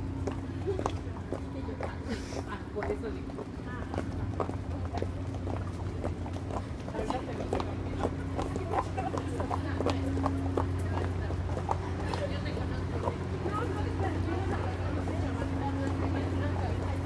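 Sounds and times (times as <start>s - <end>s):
footsteps on pavement: 0.0s - 17.0s
steady low hum: 0.0s - 17.0s.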